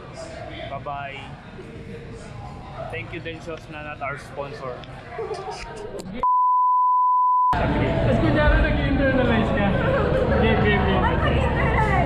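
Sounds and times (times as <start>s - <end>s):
restaurant chatter: 0.0s - 6.2s, 7.6s - 12.0s.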